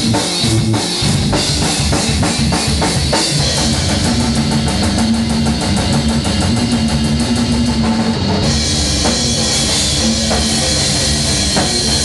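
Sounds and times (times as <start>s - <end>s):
drums beating on cymbals: 0.0s - 12.0s
distorted electric guitar droning: 3.3s - 12.0s.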